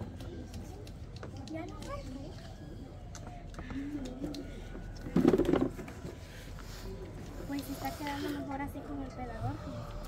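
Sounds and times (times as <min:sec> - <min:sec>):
low background voices: 0:00.0 - 0:10.0.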